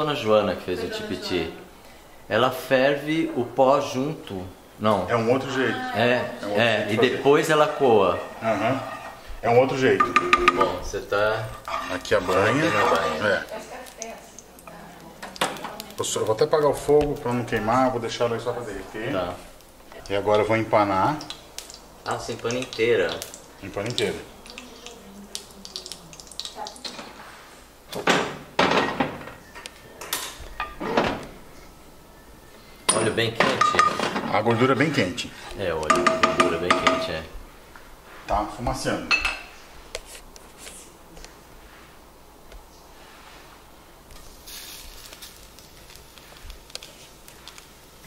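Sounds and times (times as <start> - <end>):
roe sizzling in lard: 0.0 - 28.6, 34.3 - 48.0
pots and pans clattering: 7.4 - 13.5, 27.9 - 31.2, 32.8 - 34.8, 35.8 - 37.3
sharp pops of hot fat: 13.5 - 17.2, 21.2 - 27.0, 44.1 - 47.8.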